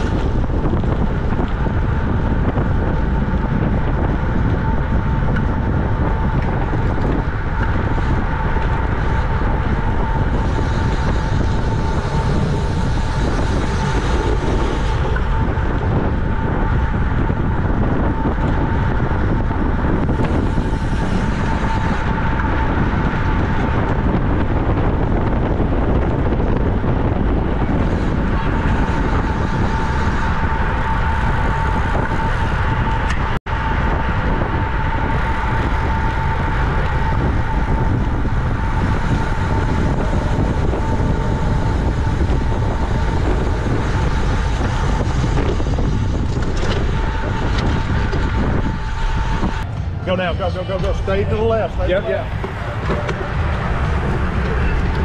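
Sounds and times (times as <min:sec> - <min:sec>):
thin steady whine: 0:00.0 - 0:55.0
tyre and road noise: 0:00.0 - 0:55.0
wind rushing over microphone: 0:00.0 - 0:55.0.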